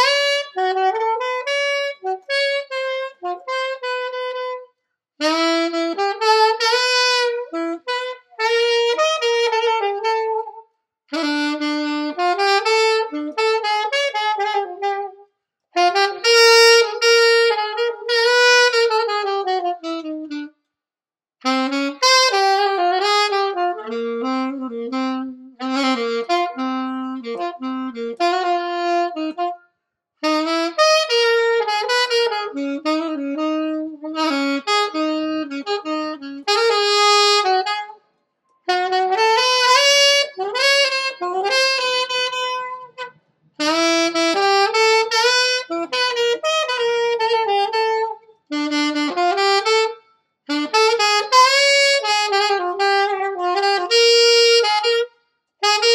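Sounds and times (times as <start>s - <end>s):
saxophone playing jazz melody: 0.0s - 20.6s, 21.4s - 38.0s, 38.6s - 55.9s.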